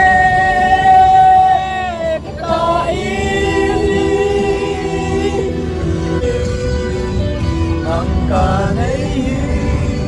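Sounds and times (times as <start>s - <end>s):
group singing together: 0.0s - 6.1s, 7.8s - 10.0s
van engine and road rumble: 0.0s - 10.0s.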